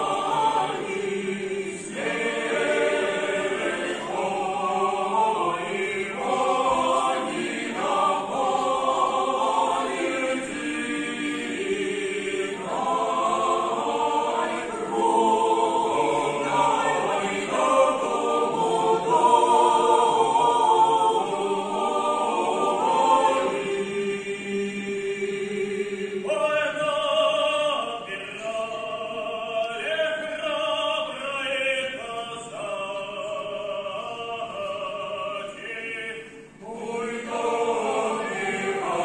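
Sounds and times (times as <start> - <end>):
mixed choir singing a cappella: 0.0 - 39.0.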